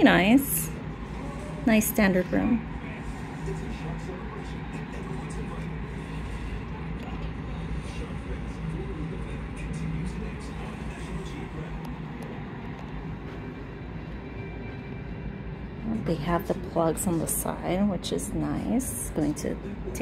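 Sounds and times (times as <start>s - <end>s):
air conditioning humming: 0.0s - 20.0s.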